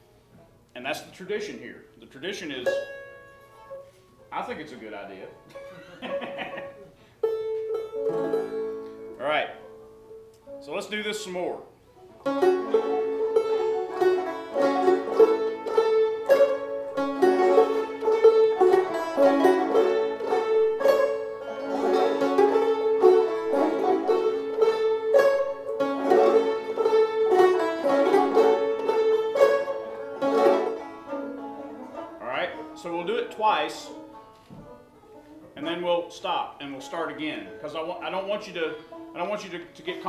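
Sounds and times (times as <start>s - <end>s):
banjos fingerpicking: 1.4s - 40.0s.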